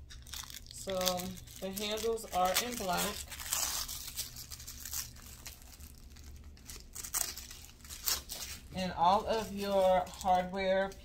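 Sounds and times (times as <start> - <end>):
plastic crackle: 0.0 - 11.0
plastic wrap crinkling: 0.0 - 11.0.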